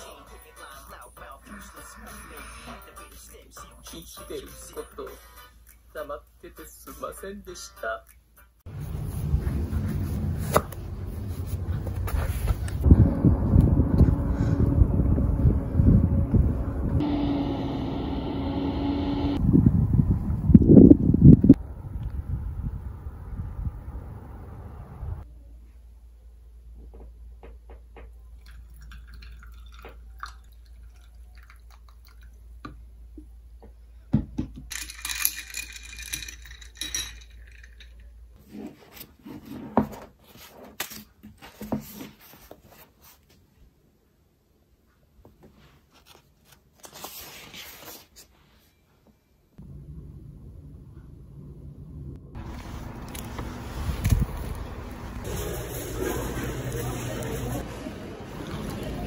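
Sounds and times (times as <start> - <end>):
low rumble inside car: 8.7 - 25.2, 49.6 - 55.3
wind buffet against microphone: 11.7 - 17.0, 19.4 - 25.2
tea trickling into jar: 28.4 - 32.4.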